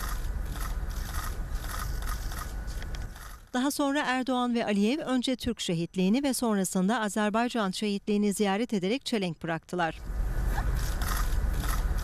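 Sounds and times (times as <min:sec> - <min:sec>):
low outdoor rumble: 0:00.0 - 0:04.2, 0:09.9 - 0:12.0.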